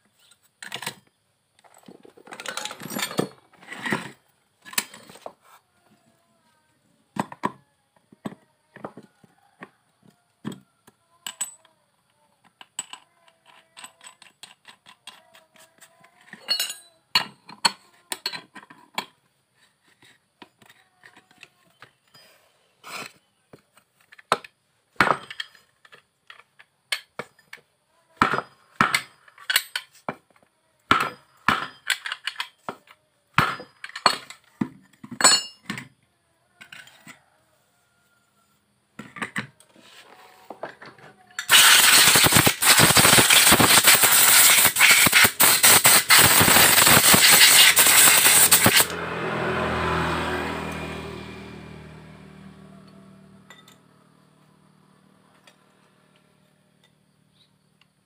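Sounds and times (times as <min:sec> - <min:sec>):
metal parts clinking and clanking: 0:00.2 - 0:05.2, 0:12.7 - 0:15.2, 0:16.2 - 0:19.1, 0:25.1 - 0:27.6, 0:28.9 - 0:30.0, 0:31.1 - 0:32.6, 0:33.5 - 0:35.9, 0:40.8 - 0:48.9.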